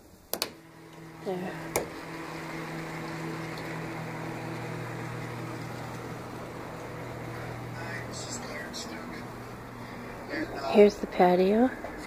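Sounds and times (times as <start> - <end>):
motorized curtain track humming: 0.3 - 12.0.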